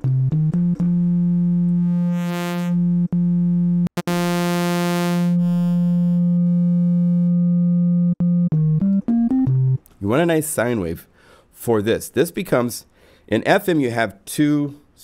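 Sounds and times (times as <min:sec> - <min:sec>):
low synthesizer note: 0:00.8 - 0:09.8.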